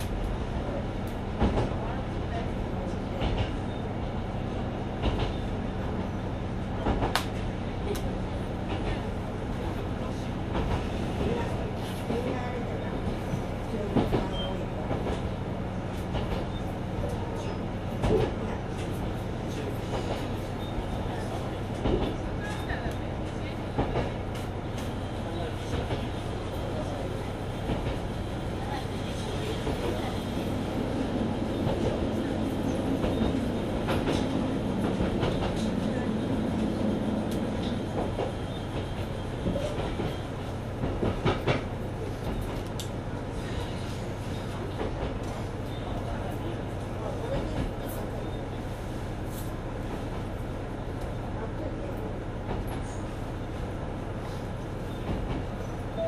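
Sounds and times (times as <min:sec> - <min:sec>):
railcar engine hum: 0:00.0 - 0:56.0.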